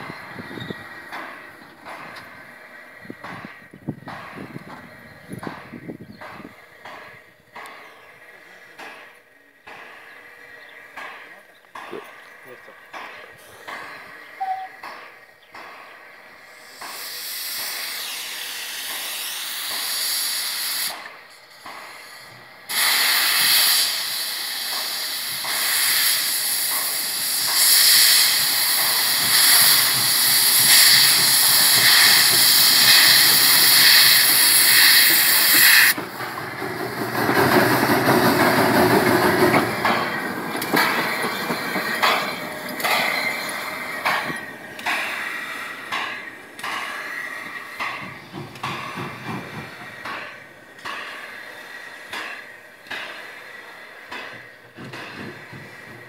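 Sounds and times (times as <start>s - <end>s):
escaping steam hissing: 0.0s - 56.0s
steam locomotive beating exhaust: 0.0s - 56.0s.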